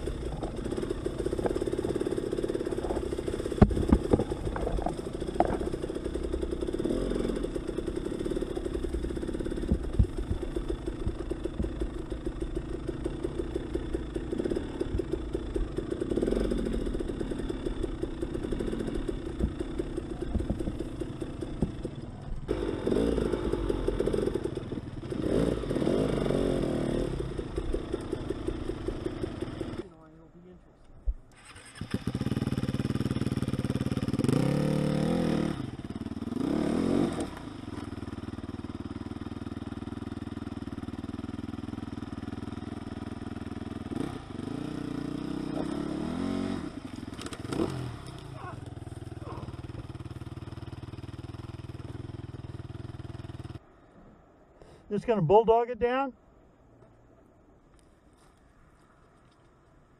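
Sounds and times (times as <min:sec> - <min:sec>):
dirt bike engine revving: 0:00.0 - 0:29.9, 0:31.3 - 0:53.6.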